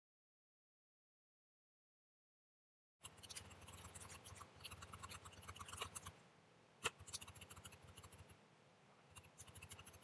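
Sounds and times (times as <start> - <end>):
stylus tapping and scratching on screen: 3.0 - 6.2, 6.8 - 8.4, 9.0 - 10.0.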